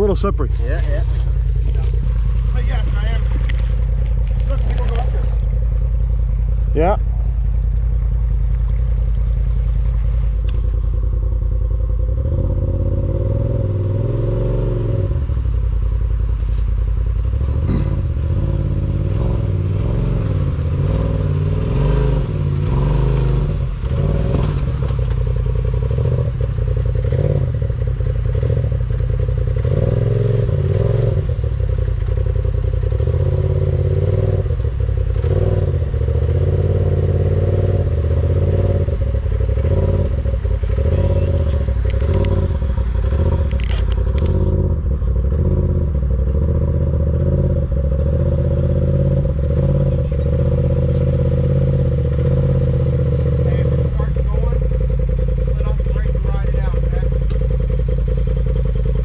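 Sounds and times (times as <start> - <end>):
tyres and chassis scraping rock: 0.0 - 5.9, 16.2 - 32.3, 32.9 - 45.5, 48.2 - 59.0
utv engine revving: 0.0 - 59.0.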